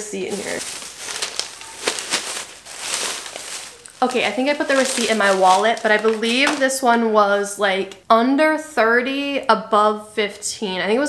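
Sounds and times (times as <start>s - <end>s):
bag and packaging rustling: 0.0s - 7.0s.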